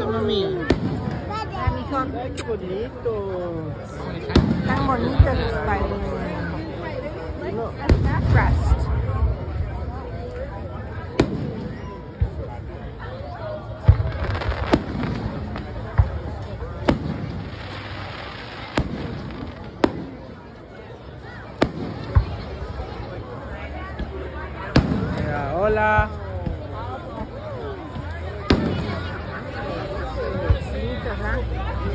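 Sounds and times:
crowd chatter: 0.0s - 31.9s
fireworks bangs: 0.4s - 1.9s, 4.2s - 5.9s, 13.8s - 20.6s, 21.5s - 23.0s, 24.0s - 25.6s, 28.4s - 30.7s.

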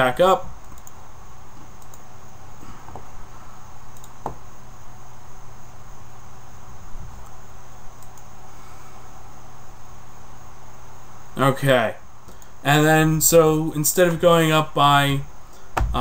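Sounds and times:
room hum and hiss: 0.0s - 16.0s
mouse clicks: 0.6s - 1.0s, 3.9s - 4.4s.

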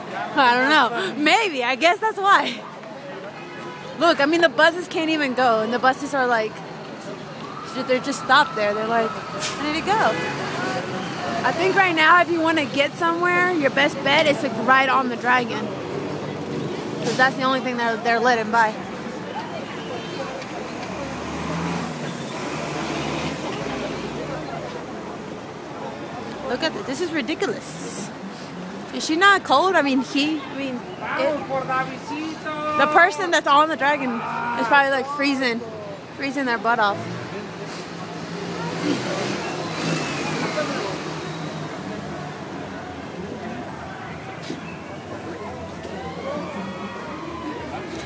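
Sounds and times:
faint crowd chatter: 0.0s - 48.0s
street traffic noise: 0.0s - 48.0s.

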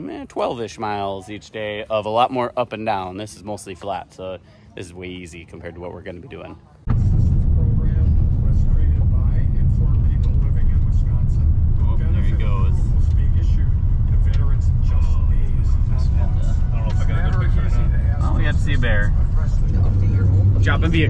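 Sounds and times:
faint voices: 0.0s - 21.0s.

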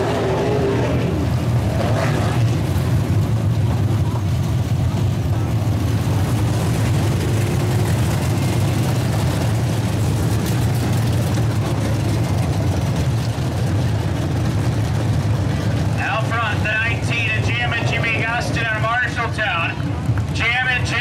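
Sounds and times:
race car engines droning: 0.0s - 21.0s.

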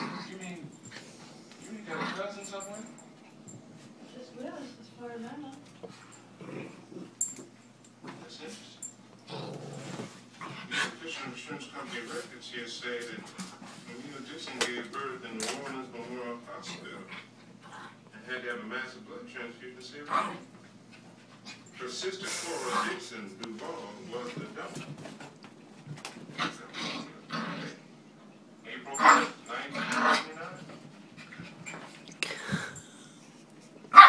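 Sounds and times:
dogs play-wrestling noises: 0.0s - 4.7s, 5.6s - 14.8s, 20.0s - 27.8s, 28.9s - 34.0s.

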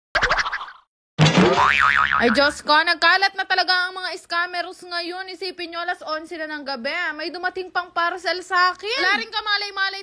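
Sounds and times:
cartoon boing: 0.2s - 2.6s
short wobbling twang: 1.2s - 2.5s.

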